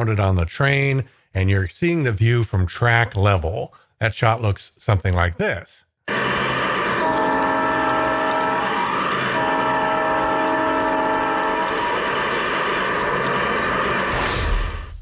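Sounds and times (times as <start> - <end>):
model train motor and wheels running: 6.1 - 14.1
chord horn blasts: 6.9 - 13.1.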